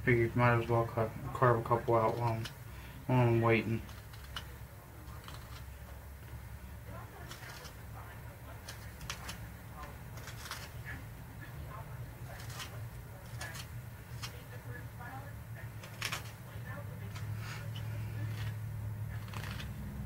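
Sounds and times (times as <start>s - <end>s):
steady low hum: 0.0s - 20.0s
knife scraping wood: 1.5s - 2.6s, 3.2s - 5.8s, 7.1s - 7.9s, 8.5s - 11.1s, 12.2s - 14.6s, 15.6s - 20.0s.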